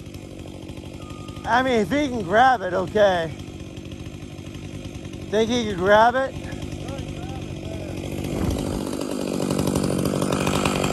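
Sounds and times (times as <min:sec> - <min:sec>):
engine running steadily: 0:00.0 - 0:10.9.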